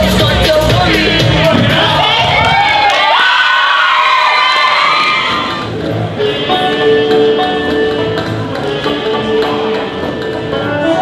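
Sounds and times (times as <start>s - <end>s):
dance music: 0.0s - 11.0s
audience cheering and whooping: 1.7s - 5.7s.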